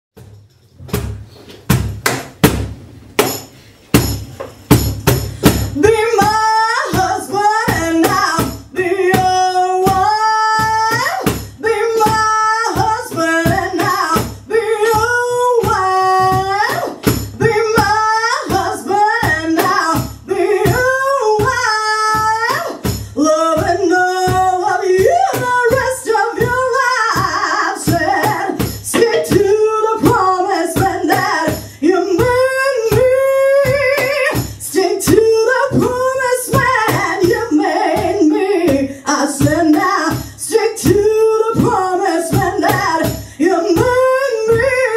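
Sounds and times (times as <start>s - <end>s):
cajon deep wooden knocks: 0.2s - 3.4s
steady percussion beat: 0.2s - 44.8s
woman singing blues: 5.3s - 44.9s.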